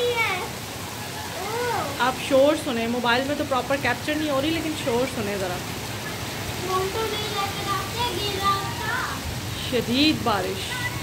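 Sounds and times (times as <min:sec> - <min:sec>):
heavy rain: 0:00.0 - 0:11.0
voice: 0:01.4 - 0:05.6, 0:06.6 - 0:11.0.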